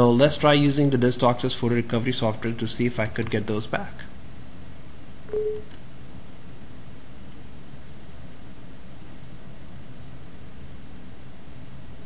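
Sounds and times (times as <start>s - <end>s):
steady low hiss: 0.0s - 12.0s
short electronic beep: 5.3s - 5.7s.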